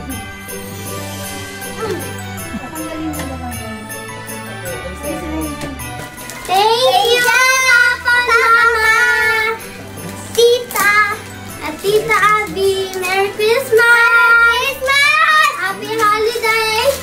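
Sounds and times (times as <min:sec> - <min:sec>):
girl singing in a high voice: 0:06.4 - 0:09.6, 0:10.4 - 0:17.0.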